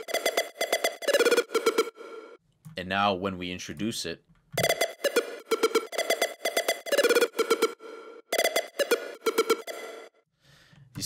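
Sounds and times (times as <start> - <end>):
staccato square wave synth lead: 0.0 - 2.4, 4.6 - 10.1.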